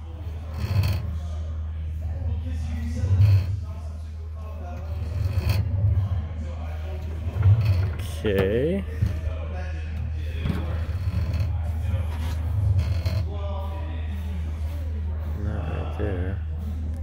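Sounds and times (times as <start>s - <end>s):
control cables moving: 4.8s - 6.2s, 6.8s - 13.3s.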